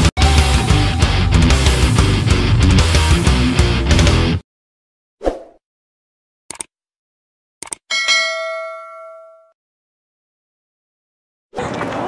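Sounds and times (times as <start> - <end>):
notification bell strike: 7.9 - 9.6.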